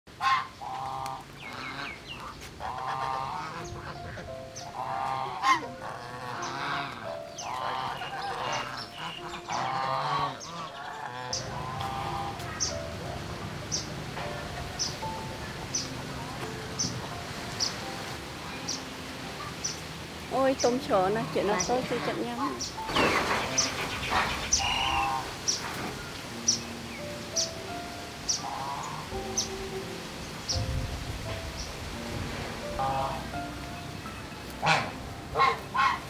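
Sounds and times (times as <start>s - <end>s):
geese honking: 0.1s - 30.6s, 32.6s - 36.0s.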